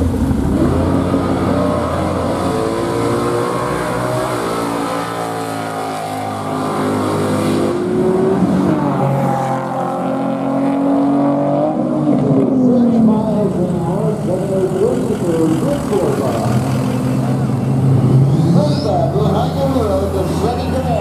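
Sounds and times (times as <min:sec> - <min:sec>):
car engine accelerating hard: 0:00.0 - 0:21.0.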